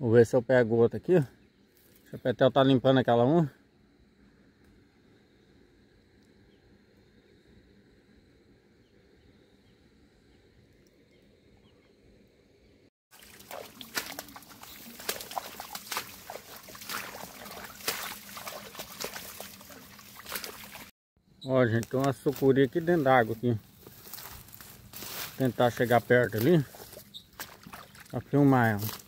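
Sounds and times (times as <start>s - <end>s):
faint outdoor background: 0.0s - 29.0s
dry grass and leaves rustling: 13.1s - 20.9s, 21.5s - 29.0s
footsteps squelching in mud: 13.1s - 20.9s, 21.9s - 29.0s.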